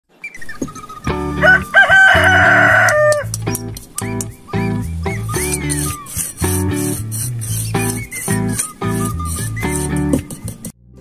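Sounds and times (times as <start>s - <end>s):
background music with bass line: 0.9s - 11.0s
rooster crowing: 1.3s - 3.3s.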